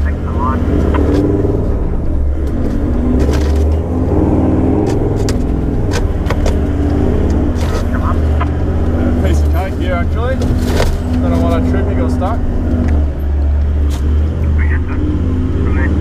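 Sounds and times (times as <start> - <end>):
vehicle engine running under load: 0.0 - 16.0
vehicle jolting knocks and clicks: 2.4 - 3.8, 4.8 - 7.9, 9.4 - 11.7.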